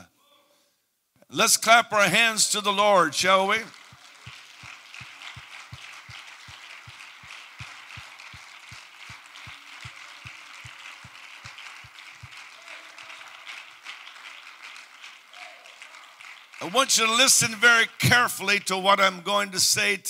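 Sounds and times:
crowd clapping: 3.2s - 18.6s.

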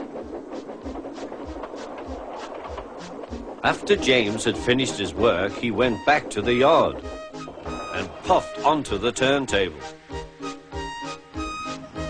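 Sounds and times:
background music: 0.0s - 12.0s
steam locomotive chuffing: 0.0s - 12.0s.

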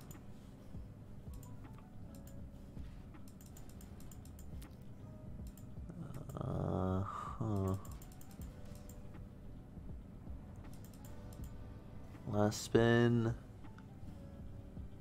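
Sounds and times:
computer keyboard keys clicking: 1.3s - 2.6s, 3.2s - 6.4s, 7.4s - 9.2s, 10.6s - 11.6s.

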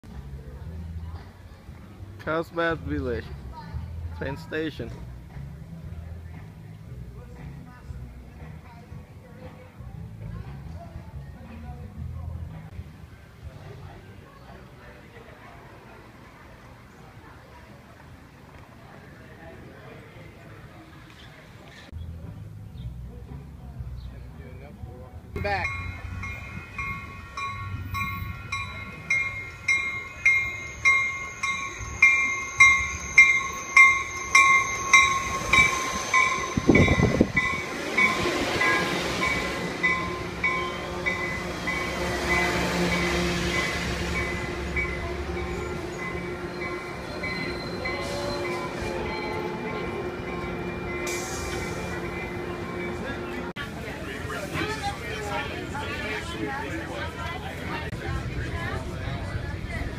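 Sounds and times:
train rumbling past: 0.1s - 59.9s
train bell ringing: 25.4s - 53.5s.

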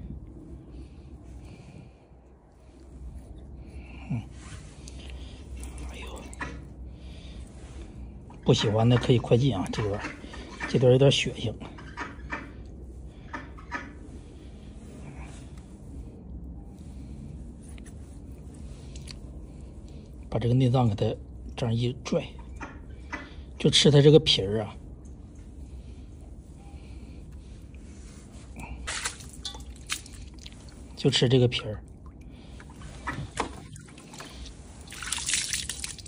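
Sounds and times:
low steady hum: 0.0s - 36.0s
wet squelches and clicks: 4.8s - 6.9s, 11.8s - 13.9s, 17.7s - 20.3s, 22.4s - 23.3s, 28.5s - 31.1s, 31.8s - 36.0s
water splashing on concrete: 28.8s - 30.7s, 32.7s - 36.0s.

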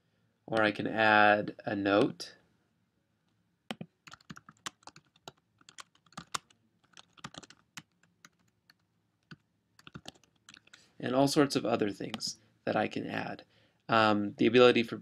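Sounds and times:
typing on a computer keyboard: 3.7s - 10.8s.

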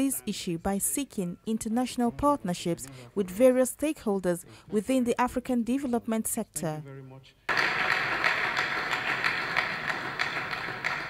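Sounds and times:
audience applauding: 7.5s - 11.0s.

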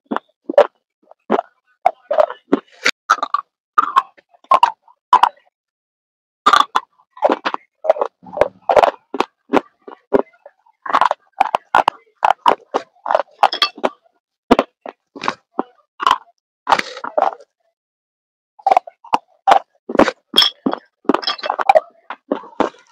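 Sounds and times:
person chewing crunchy food: 0.1s - 4.8s, 6.5s - 13.9s.

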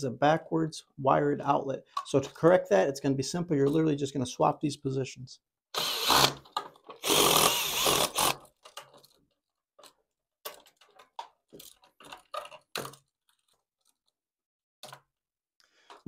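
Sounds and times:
cordless drill running: 5.8s - 6.4s, 7.0s - 8.4s.

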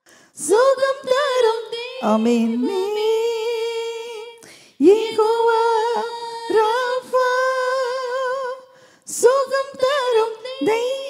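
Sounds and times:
woman singing unaccompanied: 0.4s - 11.0s.

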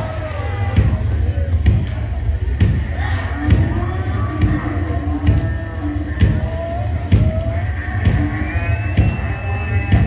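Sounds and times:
drum strokes: 0.0s - 10.0s.

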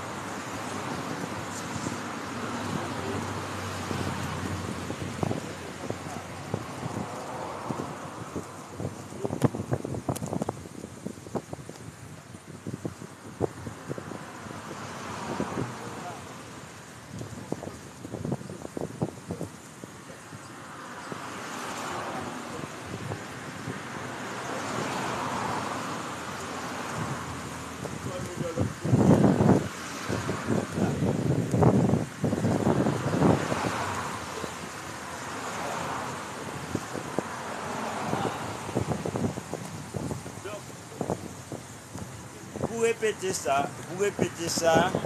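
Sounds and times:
distant traffic: 0.0s - 10.4s, 11.3s - 45.0s
wind rushing: 0.0s - 20.2s, 21.1s - 45.0s.

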